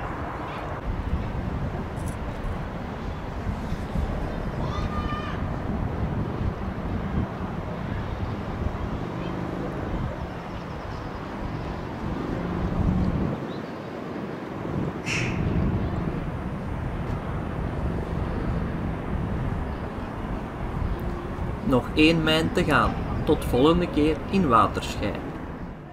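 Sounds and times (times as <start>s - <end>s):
wind buffeting microphone: 0.0s - 25.9s
brief high-pitched sound: 15.1s - 15.6s.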